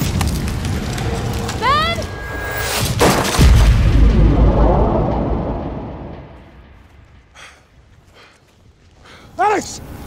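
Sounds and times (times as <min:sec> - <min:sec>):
sudden crash: 0:02.3 - 0:07.3
deep heavy boom: 0:03.0 - 0:07.4.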